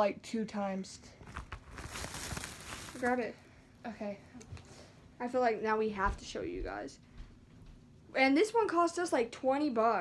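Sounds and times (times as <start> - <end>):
plastic bag rustling: 1.2 - 3.4.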